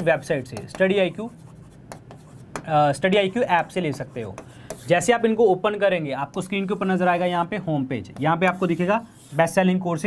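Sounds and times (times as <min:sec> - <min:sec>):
pen scratching on screen: 0:00.0 - 0:05.1.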